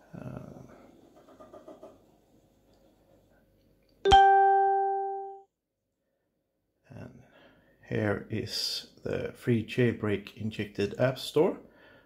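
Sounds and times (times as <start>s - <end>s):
bright plucked musical note: 4.1s - 5.4s.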